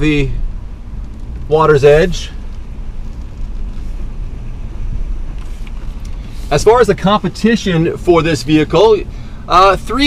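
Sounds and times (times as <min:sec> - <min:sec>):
engine and tyres rumbling on dirt: 0:00.0 - 0:10.0.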